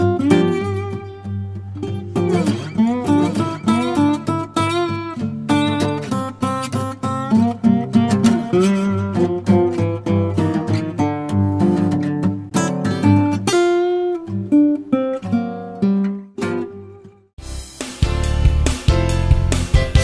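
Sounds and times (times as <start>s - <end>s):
acoustic guitar music: 0.0s - 20.0s.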